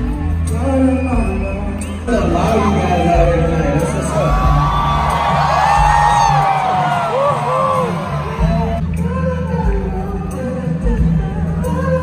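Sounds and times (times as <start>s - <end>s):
fans screaming and cheering: 0.0s - 9.0s
live concert music with bass beat: 0.0s - 12.0s.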